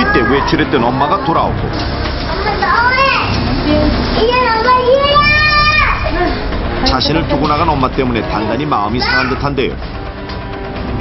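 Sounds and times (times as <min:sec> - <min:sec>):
girl crying and shouting: 0:04.2 - 0:06.4.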